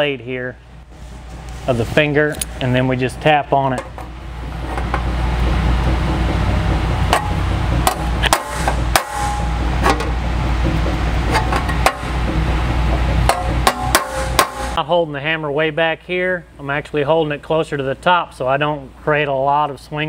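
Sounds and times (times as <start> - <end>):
hammer tapping sheet metal: 6.7 - 14.8.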